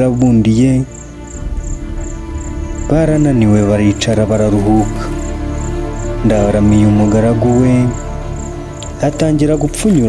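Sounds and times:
cricket chirping: 0.0 - 10.0
low background music: 0.0 - 10.0.

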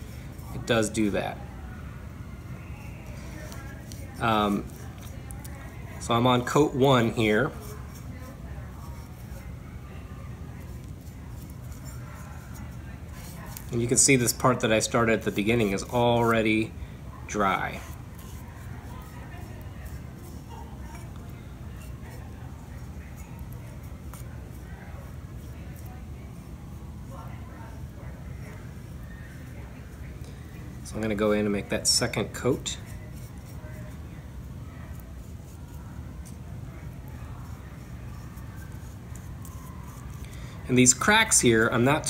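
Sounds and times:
paintbrush scratching on clay bowl: 0.0 - 1.6, 2.3 - 42.0
low room hum: 0.0 - 42.0.

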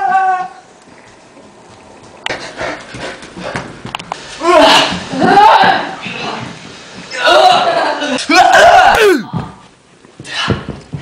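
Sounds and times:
person screaming: 8.3 - 9.4.

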